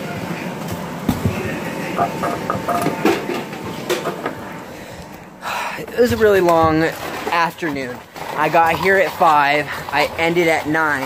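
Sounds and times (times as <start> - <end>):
steady hum: 0.0 - 6.4.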